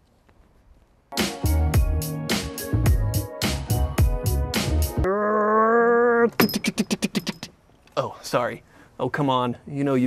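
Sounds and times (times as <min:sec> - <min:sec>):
mouth-made popping sounds: 0:05.0 - 0:07.6.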